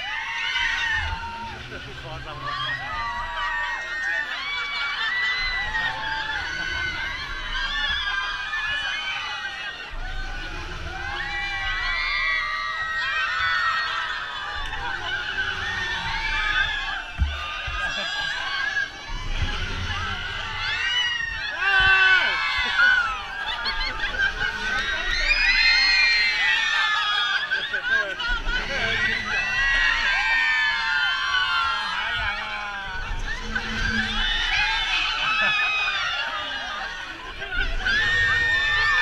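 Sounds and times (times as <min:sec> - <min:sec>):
riders screaming and laughing: 0:00.0 - 0:39.0.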